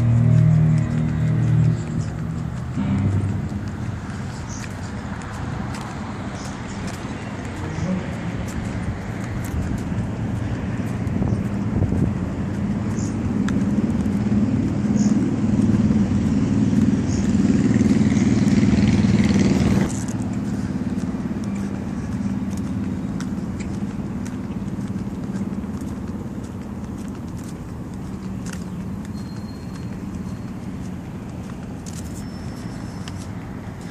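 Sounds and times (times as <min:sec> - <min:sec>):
road traffic noise: 0:00.0 - 0:33.9.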